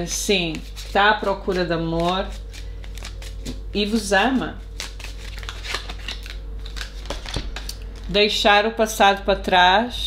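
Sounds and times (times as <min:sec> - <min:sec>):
cards clicking and sliding: 0:01.5 - 0:03.6, 0:04.8 - 0:07.8.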